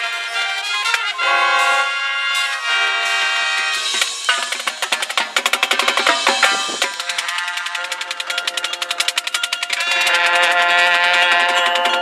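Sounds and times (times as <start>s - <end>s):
band holding notes: 0.0s - 12.0s
snare drum run: 2.4s - 10.7s.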